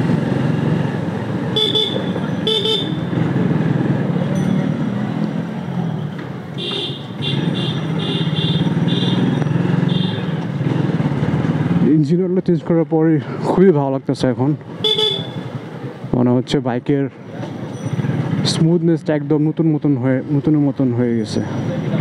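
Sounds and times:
horn toots: 1.6s - 3.1s, 6.6s - 10.4s, 14.8s - 15.5s
motorcycle engine running: 6.6s - 11.9s.

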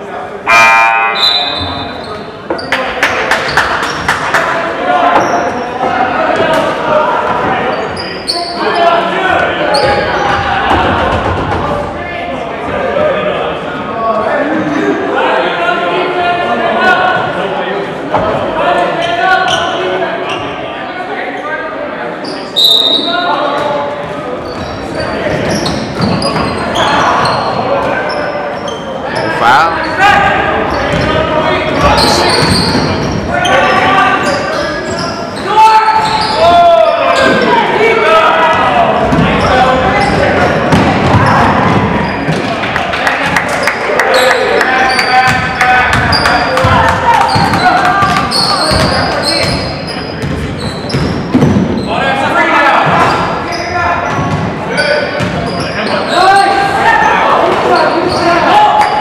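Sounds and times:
people calling and shouting: 0.0s - 59.0s.

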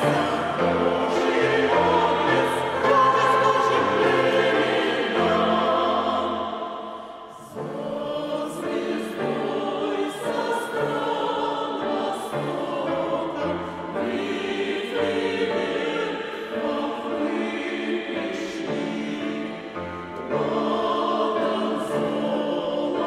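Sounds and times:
choir singing a hymn: 0.0s - 23.0s.

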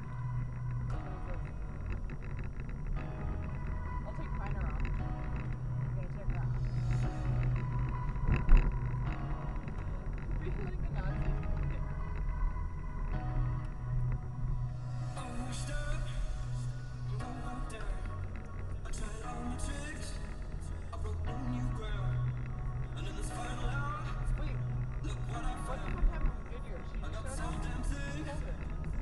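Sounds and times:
moving car rumble: 0.0s - 29.0s
song on car stereo: 0.0s - 29.0s.

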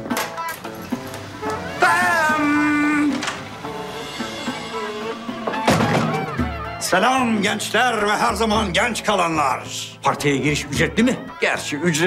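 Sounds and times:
background music with wavering melody: 0.0s - 12.0s.

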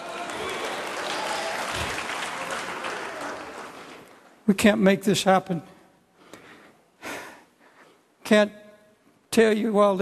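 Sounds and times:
congregation applauding: 0.0s - 4.5s.

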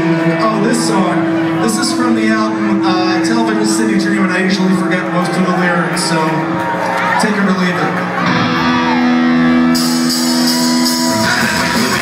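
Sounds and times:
electric guitar chord ringing: 0.0s - 6.6s, 8.1s - 12.0s
punk rock band playing: 0.0s - 12.0s.

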